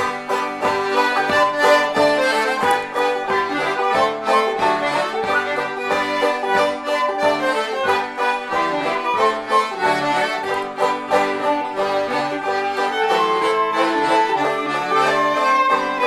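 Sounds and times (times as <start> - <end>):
accordion melody: 0.0 - 16.0
bowed fiddle melody: 0.0 - 16.0
plucked banjo notes: 0.0 - 16.0.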